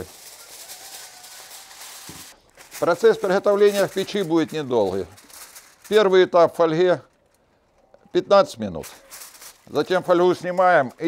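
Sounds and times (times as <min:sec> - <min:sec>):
aluminium foil rustling: 0:00.0 - 0:11.0
man speaking: 0:02.8 - 0:05.2, 0:05.9 - 0:07.1, 0:08.1 - 0:09.0, 0:09.7 - 0:11.0.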